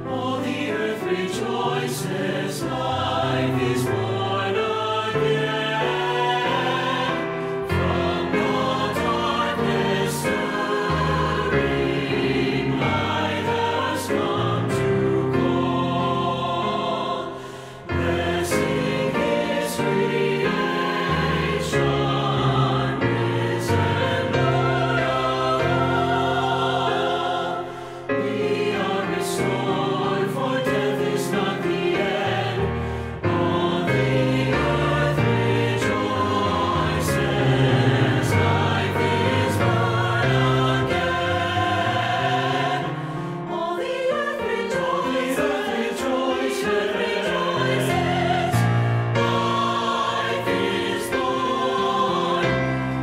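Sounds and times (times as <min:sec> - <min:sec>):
choir singing a hymn: 0:00.0 - 0:53.0
piano accompaniment: 0:00.0 - 0:53.0.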